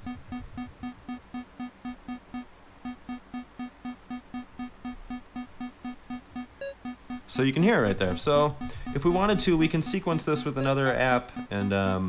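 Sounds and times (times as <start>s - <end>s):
repeating pitched sample: 0.0s - 12.0s.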